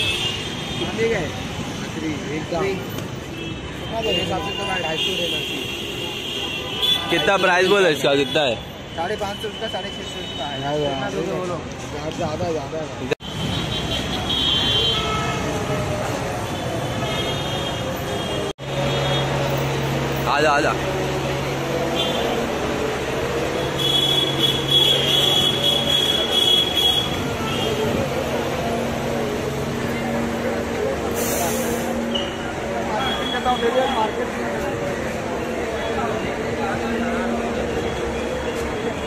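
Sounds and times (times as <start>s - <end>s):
city street traffic: 0.0s - 39.0s
crowd voices: 19.4s - 39.0s
bus air brakes hissing: 31.0s - 32.4s.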